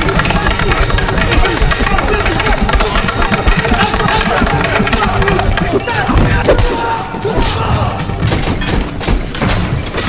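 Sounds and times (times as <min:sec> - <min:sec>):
shouting: 0:00.0 - 0:08.2
stick strikes and blows: 0:00.0 - 0:09.7.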